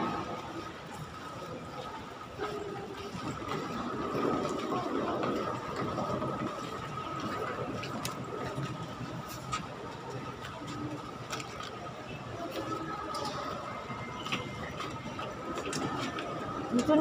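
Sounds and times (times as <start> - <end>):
crowd chatter: 0.0 - 17.0
wheeled suitcase rolling on tiles: 0.0 - 17.0.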